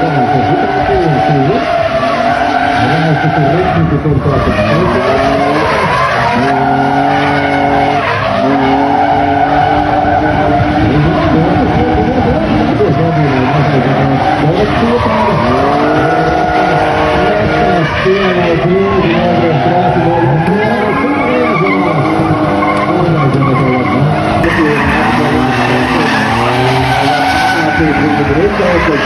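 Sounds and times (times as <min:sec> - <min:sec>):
car engines revving: 0:00.0 - 0:29.0
tyres skidding and squealing: 0:00.0 - 0:29.0.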